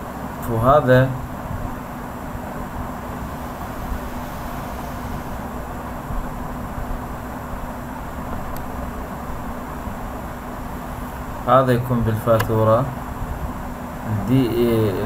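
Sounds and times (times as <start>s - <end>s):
background hiss: 0.0s - 15.0s
low electrical hum: 0.0s - 15.0s.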